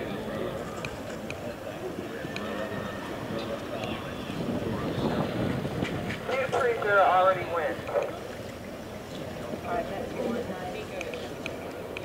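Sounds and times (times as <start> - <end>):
open-air background rumble: 0.0 - 12.0.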